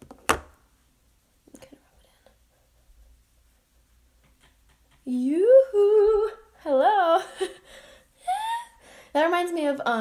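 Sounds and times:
woman humming sing-song: 0:05.0 - 0:07.2
woman speaking: 0:09.2 - 0:10.0.

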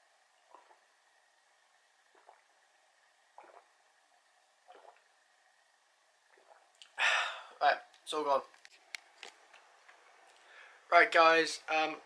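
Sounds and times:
person gulping a drink: 0:00.4 - 0:00.9, 0:02.0 - 0:02.6, 0:03.3 - 0:03.9, 0:04.6 - 0:05.2, 0:06.2 - 0:07.6.

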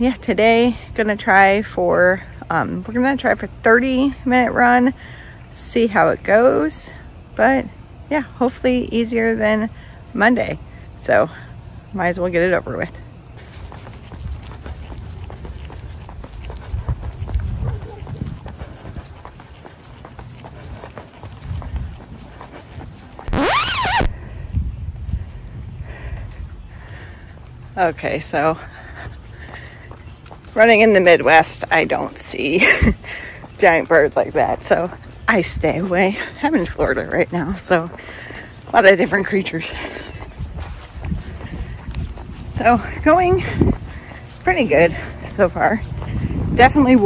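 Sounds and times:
running footsteps: 0:13.4 - 0:47.0
wind buffeting microphone: 0:13.4 - 0:47.0.

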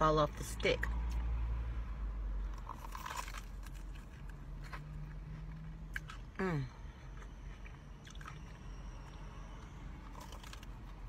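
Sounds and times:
crunchy bites: 0:02.5 - 0:11.0.

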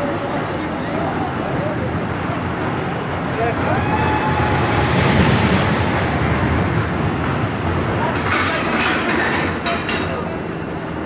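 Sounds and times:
many voices: 0:00.0 - 0:11.0
roller coaster rumble: 0:00.0 - 0:11.0.

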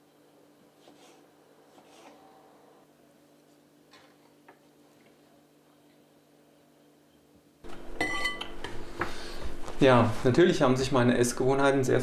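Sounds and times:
dishes and cutlery clattering: 0:08.0 - 0:08.6.

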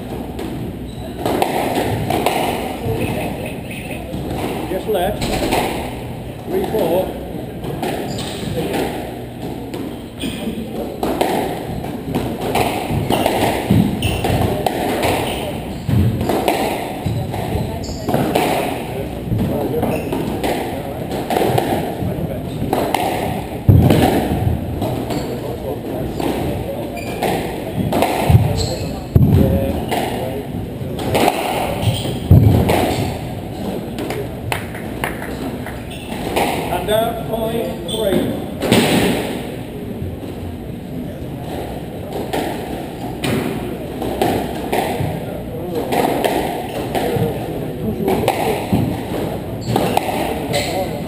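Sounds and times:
squash ball hitting rackets and walls: 0:00.0 - 0:51.0.

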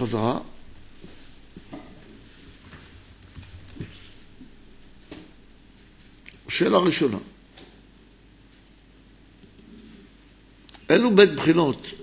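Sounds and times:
man speaking: 0:00.0 - 0:00.5, 0:10.9 - 0:12.0.

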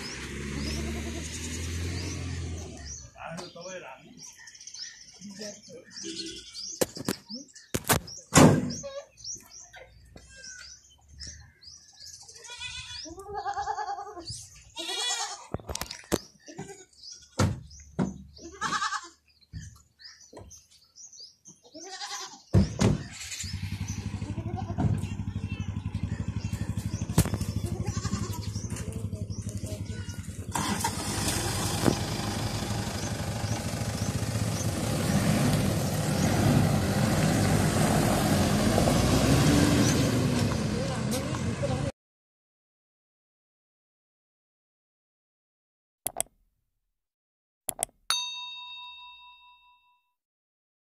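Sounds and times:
suv engine starting and running: 0:00.0 - 0:03.6, 0:23.0 - 0:41.9
goat bleating: 0:00.6 - 0:01.4, 0:12.3 - 0:15.6, 0:16.4 - 0:17.4, 0:18.3 - 0:19.3, 0:21.6 - 0:22.5, 0:24.2 - 0:25.1, 0:27.5 - 0:28.7.

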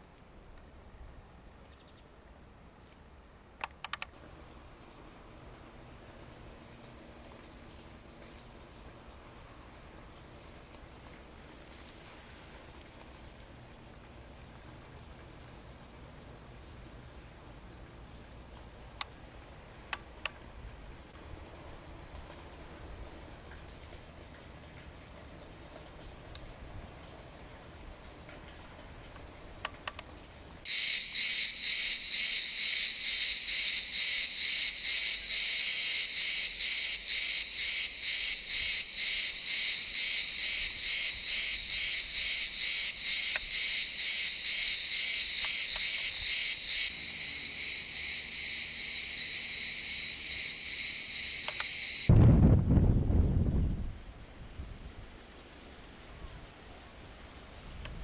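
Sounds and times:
cicada buzzing: 0:30.7 - 0:52.1.

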